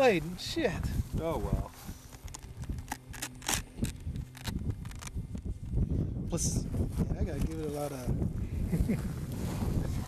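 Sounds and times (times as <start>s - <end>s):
plastic model airplane handled: 2.0s - 5.8s.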